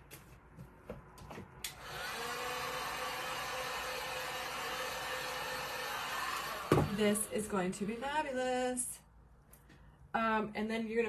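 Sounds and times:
heat gun blowing: 1.7s - 8.2s.

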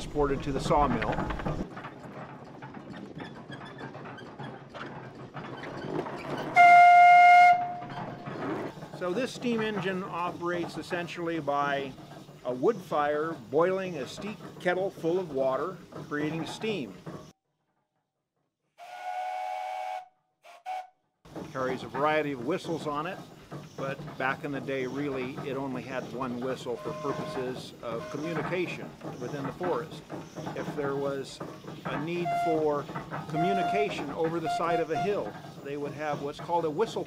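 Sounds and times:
steam whistle blast: 6.6s - 7.8s, 18.8s - 20.9s.

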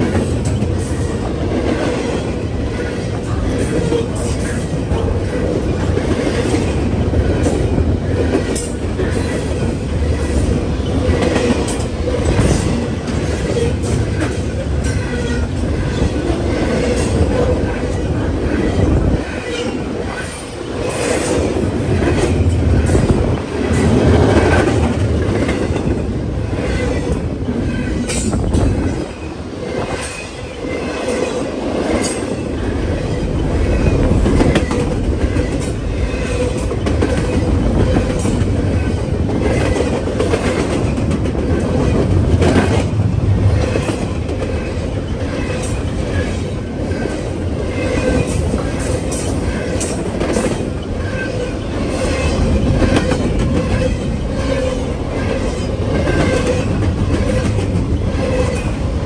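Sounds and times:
freight train rumbling past: 0.0s - 59.0s.

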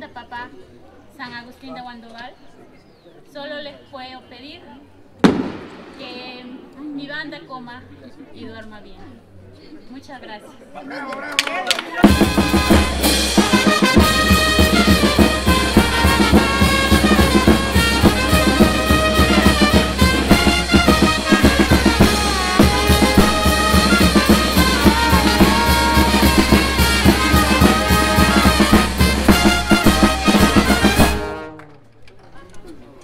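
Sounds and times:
brass band playing: 12.0s - 31.8s.

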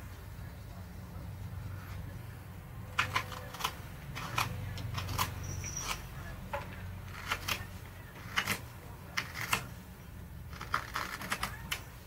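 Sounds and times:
knife shaving wood: 7.0s - 9.8s, 10.4s - 12.0s.

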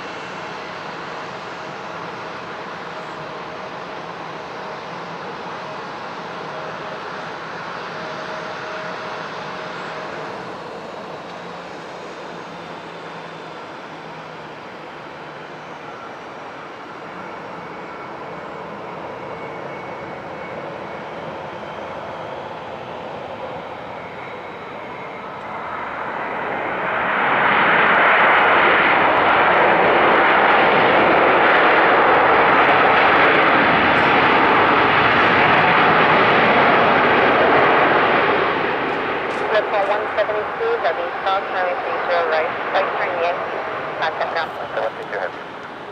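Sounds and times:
jet engine reverse thrust roar: 0.0s - 45.9s
jet engines whining: 0.0s - 45.9s.

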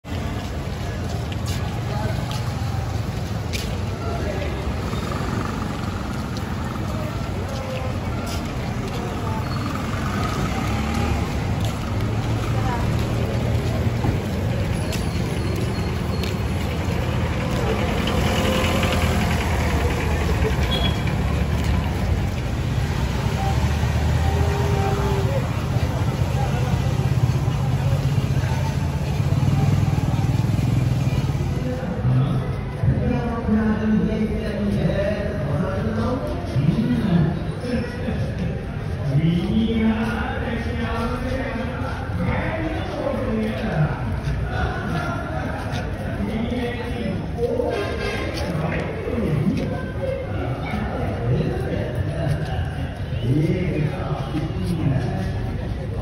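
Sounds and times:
crowd voices talking: 0.0s - 56.0s
motor traffic rumble: 0.0s - 56.0s.

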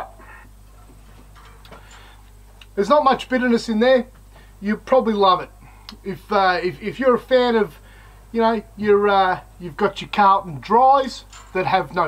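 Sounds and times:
low background hum: 0.0s - 12.0s
soft breath: 1.7s - 2.4s, 7.8s - 8.3s.

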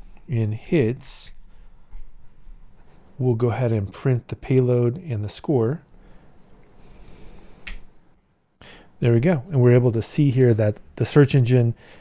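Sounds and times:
faint low room noise: 0.0s - 12.0s.

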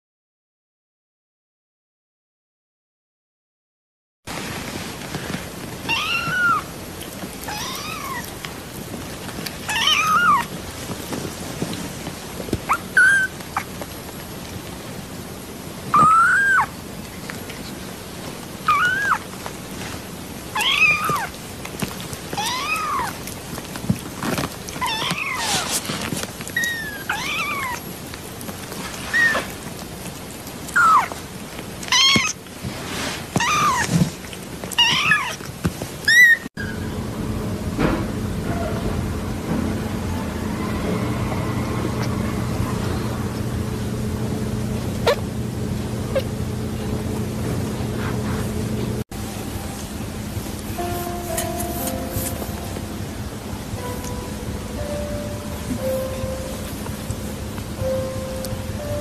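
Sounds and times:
kittens mewing: 7.4s - 8.4s, 9.7s - 10.5s, 15.9s - 16.7s, 18.7s - 19.3s, 20.6s - 21.4s, 22.4s - 23.2s, 26.6s - 27.8s, 46.1s - 46.4s
faint steady hiss: 49.2s - 59.0s.

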